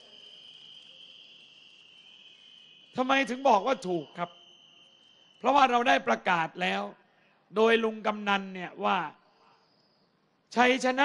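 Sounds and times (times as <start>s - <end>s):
crickets trilling: 0.0s - 6.3s, 9.1s - 10.3s.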